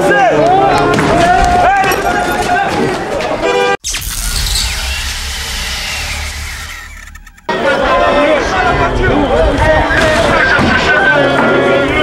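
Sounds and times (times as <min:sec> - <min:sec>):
street noise: 0:00.0 - 0:12.0
deep rumble with downward hiss: 0:04.0 - 0:07.4
voices: 0:07.5 - 0:12.0.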